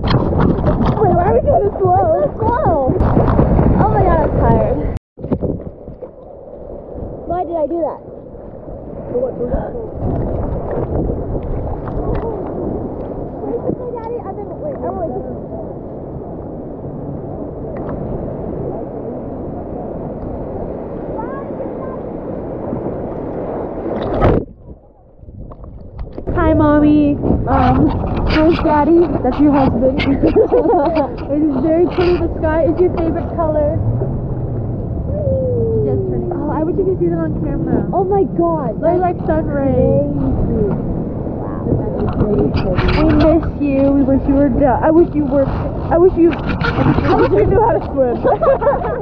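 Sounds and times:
ocean water sloshing and splashing: 0:00.0 - 0:49.0
voices: 0:00.8 - 0:03.0, 0:21.0 - 0:22.4, 0:26.3 - 0:34.3, 0:35.0 - 0:49.0
laughter: 0:30.0 - 0:31.2, 0:48.1 - 0:49.0.

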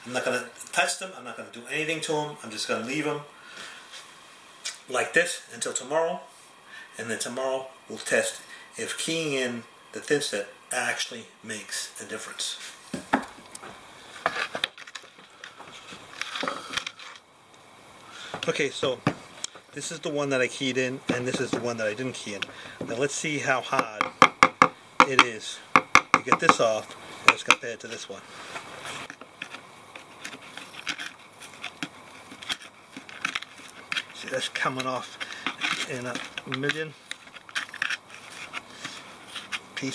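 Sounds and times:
metal tool scraping mortar: 0:28.8 - 0:39.9.

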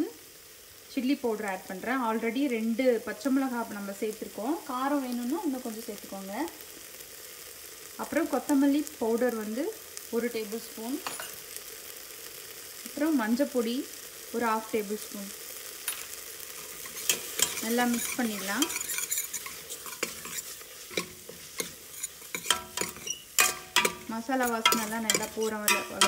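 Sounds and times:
light sizzle: 0:00.0 - 0:26.0
metal spoon scraping a pot: 0:16.6 - 0:26.0.

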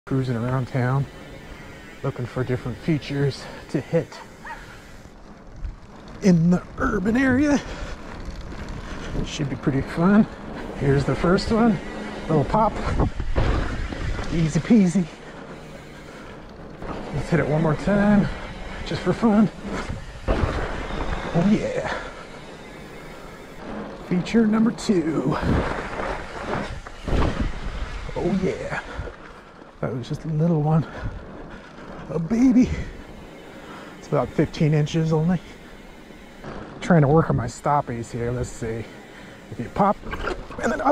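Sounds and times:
bike tyres rolling on asphalt: 0:00.1 - 0:40.9
wind noise: 0:04.4 - 0:22.0, 0:24.7 - 0:29.4.

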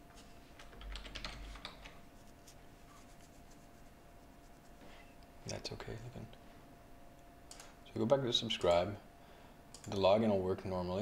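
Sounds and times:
computer keyboard typing: 0:00.6 - 0:02.0.

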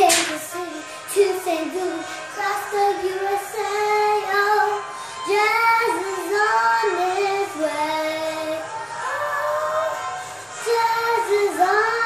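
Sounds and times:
girl singing: 0:00.0 - 0:12.0.

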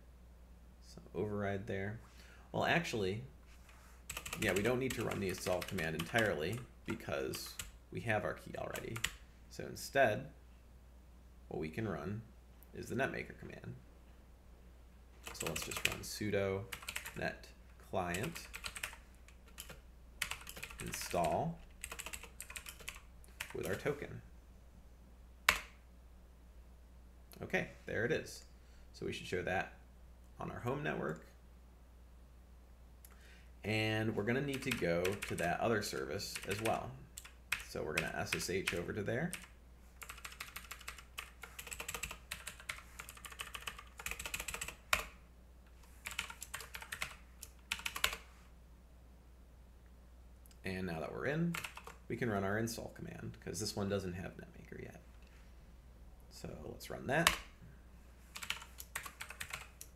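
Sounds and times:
computer keyboard typing: 0:04.1 - 0:07.8, 0:08.7 - 0:09.2, 0:15.2 - 0:16.1, 0:16.7 - 0:17.2, 0:18.1 - 0:23.9, 0:34.5 - 0:35.6, 0:36.3 - 0:45.1, 0:46.0 - 0:48.2, 0:51.5 - 0:52.0, 0:58.3 - 0:59.9.

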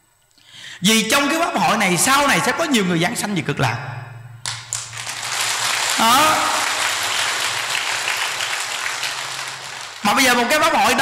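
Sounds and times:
audience applauding: 0:04.5 - 0:10.4.

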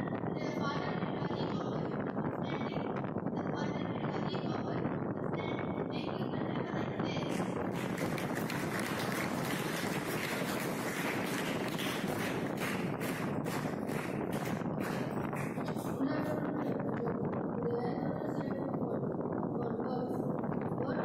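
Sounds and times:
boy reciting muffled: 0:00.0 - 0:12.4, 0:13.0 - 0:21.0
microphone hiss: 0:00.0 - 0:21.0.

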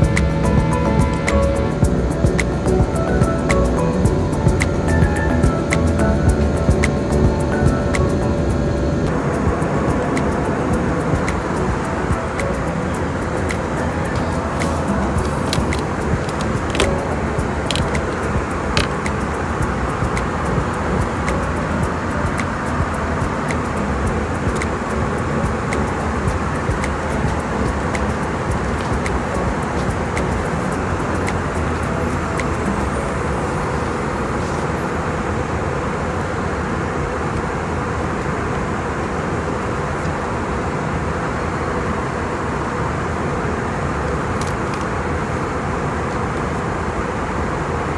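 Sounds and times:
background music: 0:00.0 - 0:34.7
aircraft cabin roar: 0:00.0 - 0:47.9.

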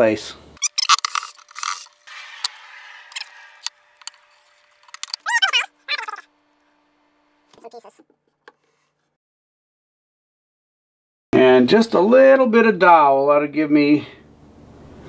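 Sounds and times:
wooden blocks clicking and knocking: 0:00.6 - 0:05.3.

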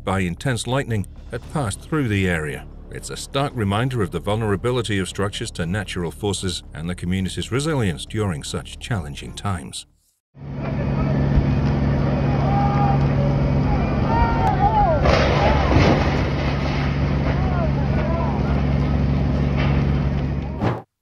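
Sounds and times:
fire engine pump droning: 0:10.4 - 0:20.5
people calling out: 0:12.2 - 0:15.8.

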